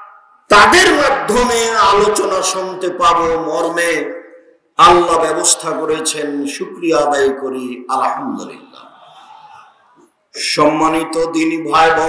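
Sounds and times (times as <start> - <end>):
man speaking over public address: 0.0 - 9.0, 10.3 - 12.0
voice echo: 0.0 - 12.0.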